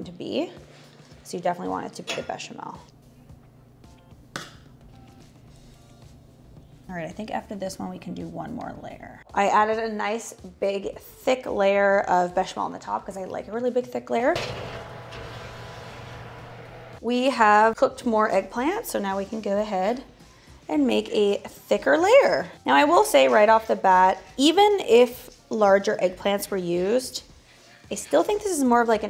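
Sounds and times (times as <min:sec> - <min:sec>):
faint background music: 0:00.0 - 0:14.7, 0:16.8 - 0:29.0
oven humming: 0:14.4 - 0:17.6.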